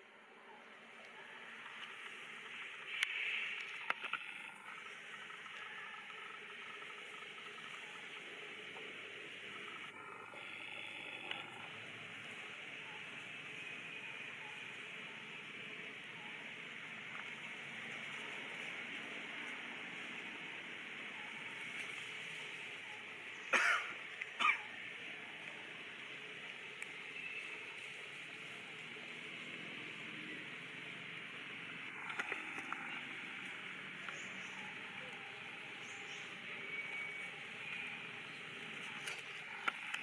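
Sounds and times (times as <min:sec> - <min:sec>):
steady background hiss: 0:00.0 - 0:40.0
faint crackles: 0:00.6 - 0:40.0
sharp cough-like sounds: 0:23.5 - 0:24.6.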